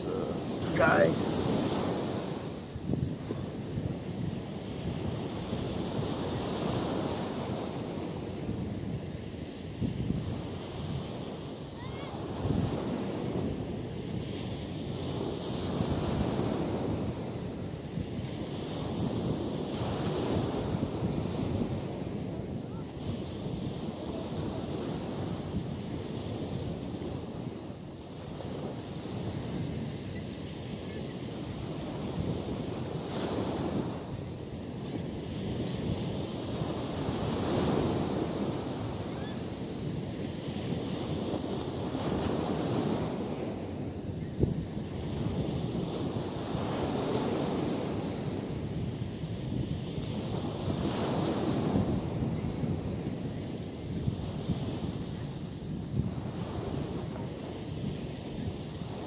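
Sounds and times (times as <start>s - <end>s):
ocean surf washing ashore: 0.0s - 59.0s
wind on microphone: 0.0s - 59.0s.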